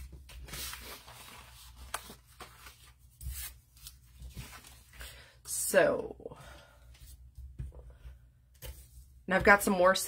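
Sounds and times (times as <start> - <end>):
paper rustling: 0.0 - 5.0.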